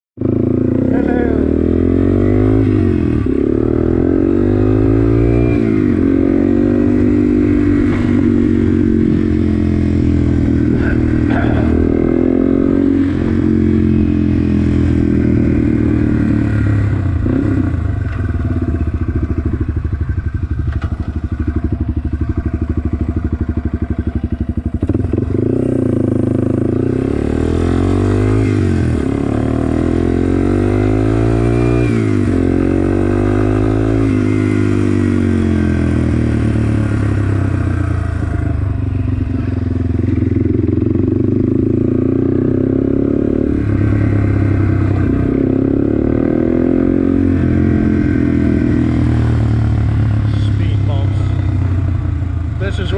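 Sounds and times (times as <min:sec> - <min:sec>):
motorcycle engine revving through gears: 0:00.2 - 0:52.9.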